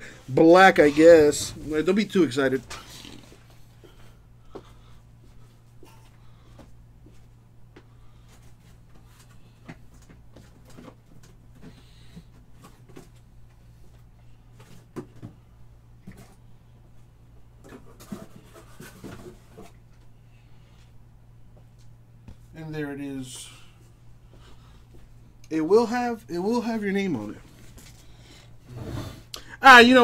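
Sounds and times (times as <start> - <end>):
low electrical hum: 0.0 - 30.0.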